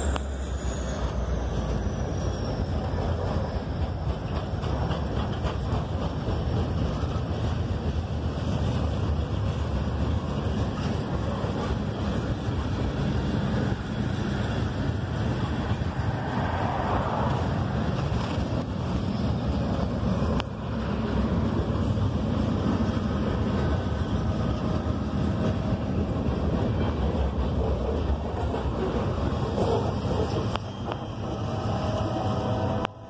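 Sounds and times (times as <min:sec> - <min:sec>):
road rumble: 0:00.0 - 0:33.0.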